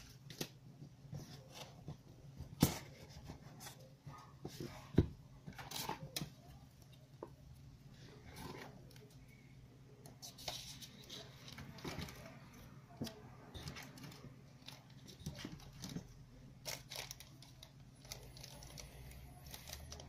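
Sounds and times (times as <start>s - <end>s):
plastic bags crinkling: 13.1s - 20.0s.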